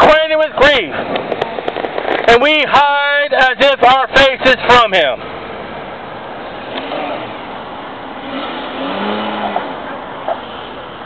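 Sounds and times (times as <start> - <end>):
outdoor background noise: 0.0 - 11.0
motor vehicle passing: 5.2 - 11.0.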